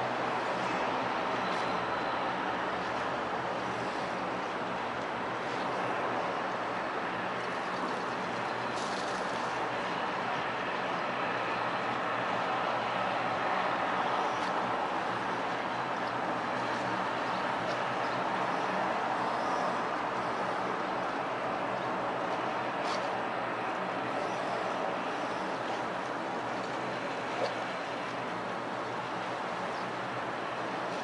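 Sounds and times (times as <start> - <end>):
boat engine hum: 0.0 - 31.0
distant traffic: 0.0 - 31.0.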